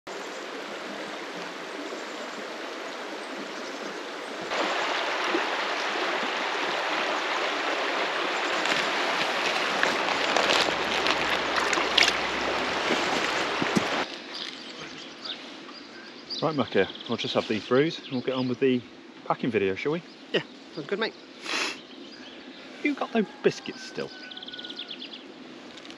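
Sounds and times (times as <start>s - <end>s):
river running over stones: 0.1s - 14.8s.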